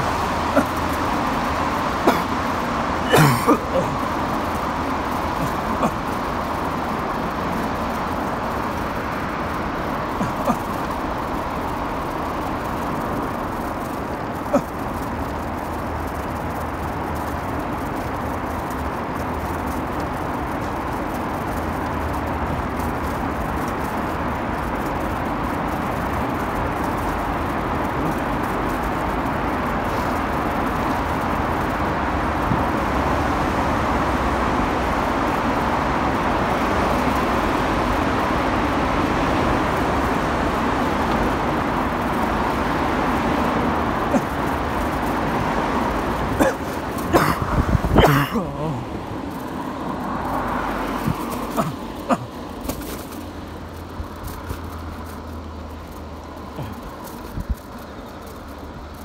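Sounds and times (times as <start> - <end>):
vehicle engine and road noise: 0.0 - 59.0.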